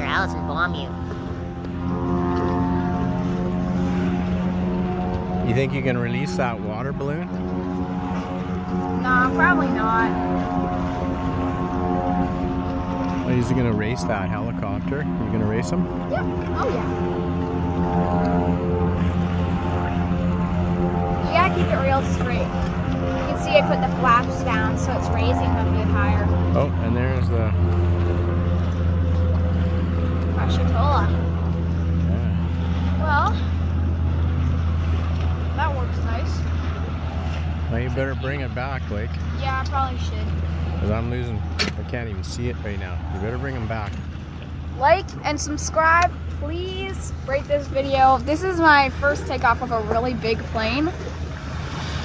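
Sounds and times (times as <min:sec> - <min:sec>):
low engine drone: 0:00.0 - 0:52.0
voices: 0:08.8 - 0:10.4, 0:21.1 - 0:22.6, 0:23.2 - 0:27.7, 0:30.3 - 0:31.3, 0:44.7 - 0:51.0.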